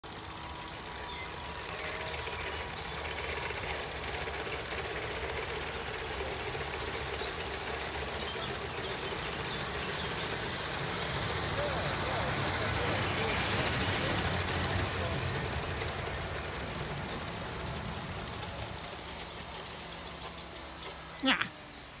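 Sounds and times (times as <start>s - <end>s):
model train wheels clattering on rail: 0.0s - 21.2s.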